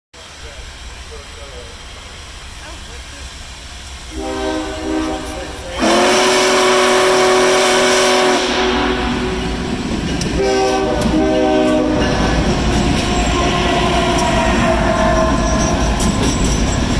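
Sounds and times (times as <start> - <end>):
diesel locomotive rumbling past: 0.2 - 16.9
train horn blasts: 4.1 - 9.7, 10.3 - 16.0.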